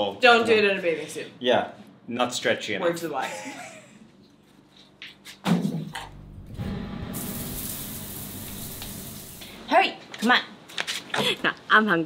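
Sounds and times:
shower head spraying water: 7.1s - 9.6s.

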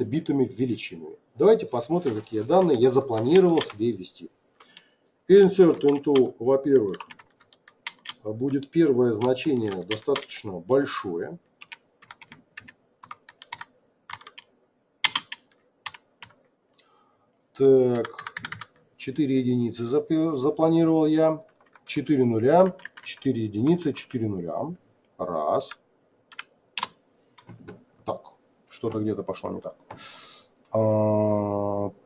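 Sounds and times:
typing on computer keyboard: 2.1s - 3.8s, 5.7s - 10.4s, 11.6s - 16.4s, 17.9s - 18.8s, 21.4s - 22.0s, 22.6s - 23.2s, 26.3s - 27.5s.

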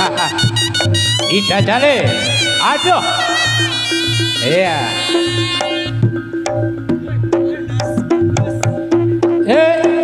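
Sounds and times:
shawm playing nasal melody: 0.0s - 10.0s.

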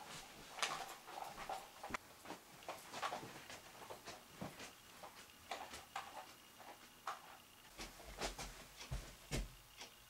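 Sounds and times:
rustling and knocks of movement: 0.0s - 9.6s.

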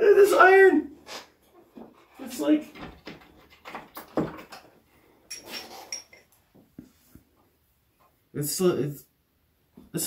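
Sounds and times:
rustling and knocking handling: 1.5s - 8.2s.

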